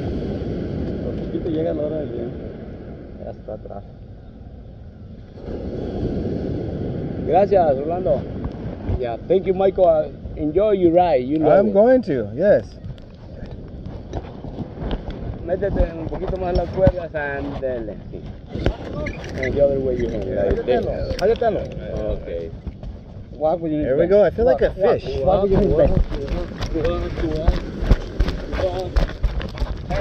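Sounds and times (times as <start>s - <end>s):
low wind rumble on microphone: 0.0s - 30.0s
footsteps in sand: 25.6s - 30.0s.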